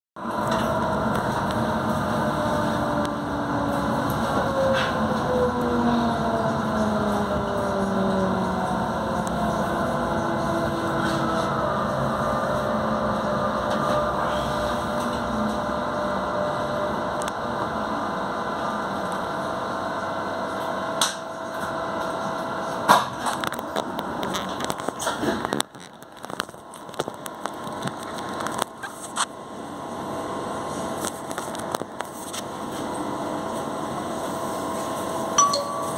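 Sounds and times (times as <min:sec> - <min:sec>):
train running hum: 0:00.2 - 0:35.9
train traction whine: 0:00.2 - 0:35.9.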